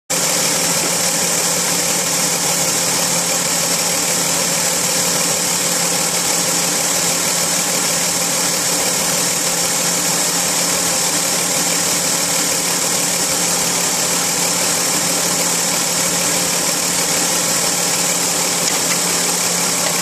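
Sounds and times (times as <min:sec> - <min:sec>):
car engine idling: 0:00.1 - 0:20.0.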